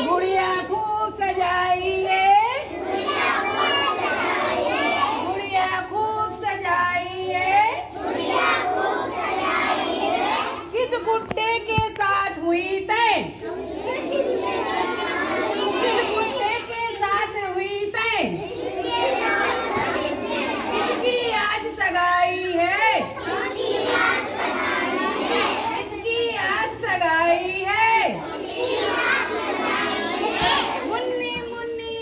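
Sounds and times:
children singing together: 2.6 - 5.5, 7.5 - 10.7, 13.4 - 16.9, 18.4 - 21.7, 23.0 - 27.1, 28.2 - 31.4.

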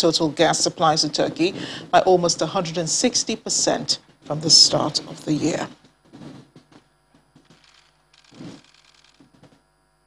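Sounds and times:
faint camera shutters clicking: 7.5 - 9.2.

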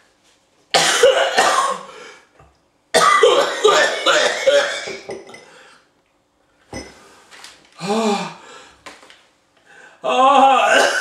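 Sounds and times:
glass knocking on table: 4.9 - 5.4, 6.8 - 7.0
glass clinking on wooden table: 4.9 - 5.5, 6.7 - 7.0
man groaning: 10.0 - 11.0.

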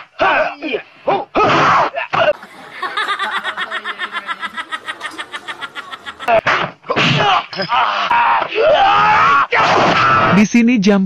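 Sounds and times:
woman laughing hard: 2.4 - 6.5.

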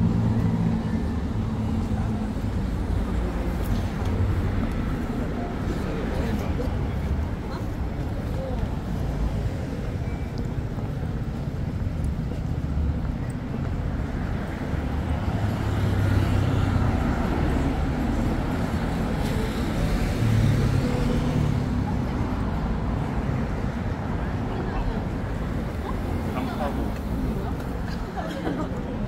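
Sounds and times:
cars driving past: 11.3 - 29.0.

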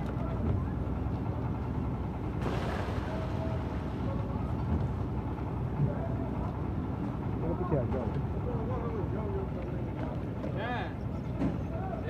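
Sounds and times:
concrete mixer rumbling: 0.0 - 10.6.

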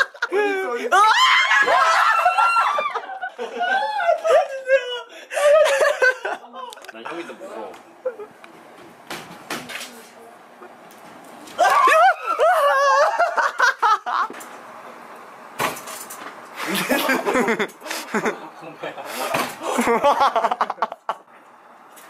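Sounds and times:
excited voices: 0.1 - 7.7, 11.6 - 14.1
man's startled cry: 0.3 - 3.0.

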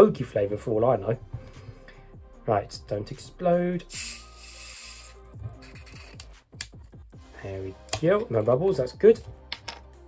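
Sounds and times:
background music with a beat: 0.0 - 10.0.

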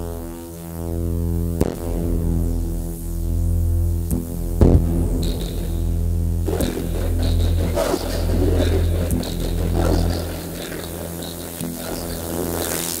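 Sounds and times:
low electronic drone: 0.0 - 13.0
pitched tone turning noisy: 6.5 - 13.0.

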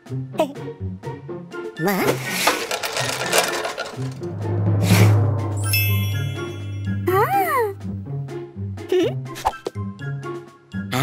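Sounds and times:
cartoon rattling clatter: 2.0 - 4.3.

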